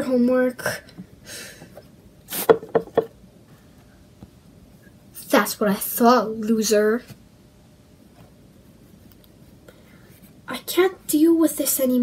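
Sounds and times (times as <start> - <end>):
person speaking: 10.4 - 12.0.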